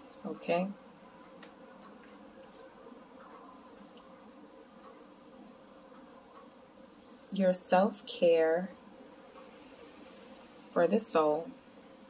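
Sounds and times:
cricket chirping: 1.0s - 7.2s, 8.7s - 10.8s, 11.6s - 11.8s.

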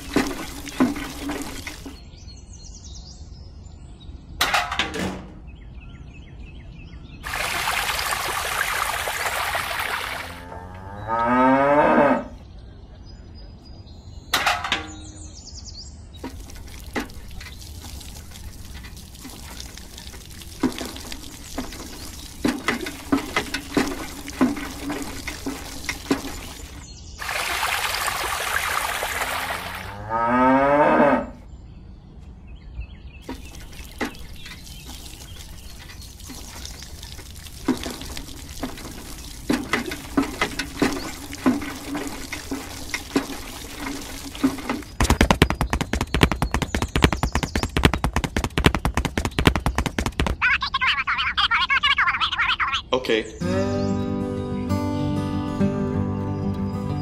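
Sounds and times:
water pouring into tin bucket: 0.0s - 2.0s, 7.2s - 10.5s, 16.2s - 30.0s, 33.2s - 50.4s
fast dense rattle: 33.3s - 50.4s.

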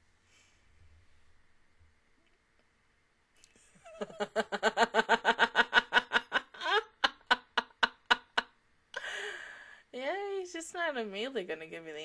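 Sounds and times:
woman starting to laugh: 3.8s - 8.4s.

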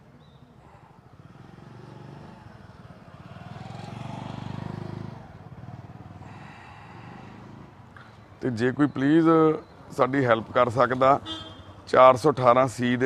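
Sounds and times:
motorcycle passing: 0.2s - 11.9s.

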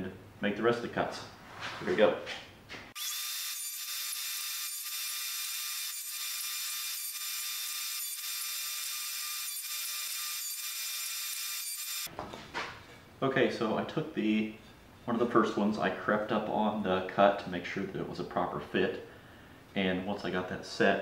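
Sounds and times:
table saw cutting wood: 2.9s - 12.1s.

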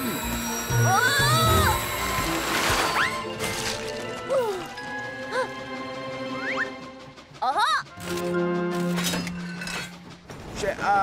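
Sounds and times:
cartoon background music: 0.0s - 9.9s
wheels clattering on rails: 2.7s - 11.0s.

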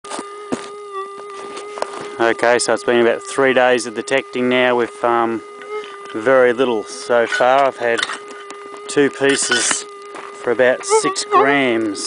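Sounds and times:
metal detector humming tone: 0.1s - 12.0s.

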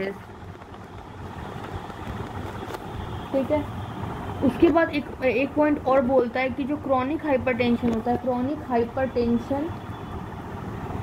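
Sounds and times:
person speaking: 4.4s - 9.7s.

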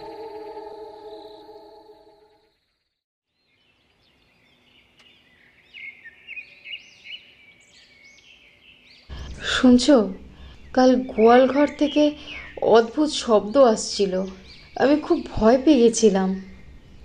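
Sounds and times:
steady held tone: 0.0s - 2.4s
birds chirping faintly: 0.0s - 17.0s.

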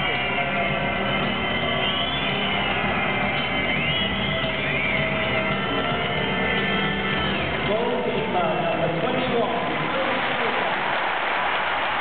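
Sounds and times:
background music: 0.0s - 11.9s
large crowd noise: 0.0s - 12.0s
stadium announcer voice: 7.6s - 11.4s.

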